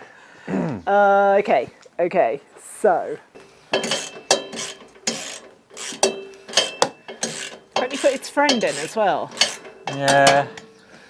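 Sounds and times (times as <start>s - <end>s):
metal parts clinking: 3.4s - 10.8s.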